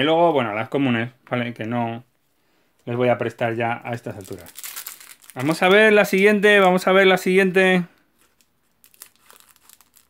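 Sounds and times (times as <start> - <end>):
faint foil crinkling: 3.9 - 6.8, 7.9 - 10.0
scissors snipping foil wrapper: 8.3 - 10.0.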